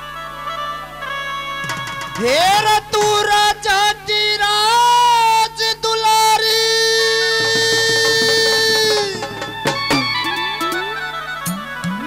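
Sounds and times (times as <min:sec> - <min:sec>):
devotional music accompaniment: 0:00.0 - 0:12.0
drums: 0:01.5 - 0:05.0, 0:06.6 - 0:12.0
man singing long high note: 0:02.2 - 0:09.8.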